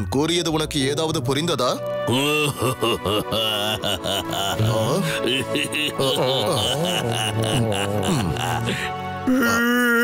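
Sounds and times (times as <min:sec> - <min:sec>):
background music: 0:00.0 - 0:10.0
cartoon character crying: 0:09.2 - 0:10.0.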